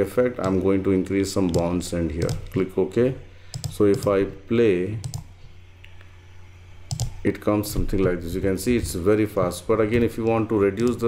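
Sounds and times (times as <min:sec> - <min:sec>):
steady low hum: 0:00.0 - 0:11.0
computer mouse click: 0:00.4 - 0:00.6, 0:01.4 - 0:02.7, 0:03.5 - 0:04.1, 0:05.0 - 0:06.0, 0:06.9 - 0:07.2, 0:10.8 - 0:11.0.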